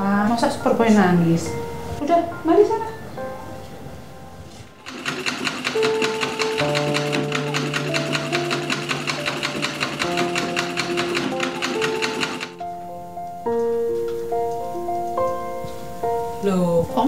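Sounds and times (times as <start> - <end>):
soft background music: 0.0 - 17.0
treadle sewing machine clattering: 4.8 - 12.6.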